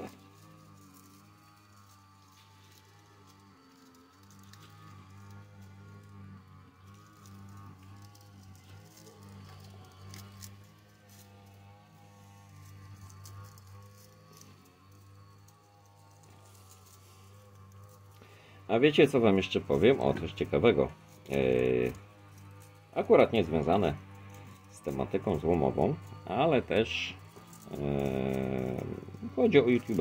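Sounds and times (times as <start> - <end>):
distant lawn mower engine: 0.0 - 30.0
wire crinkling off a coil: 0.0 - 30.0.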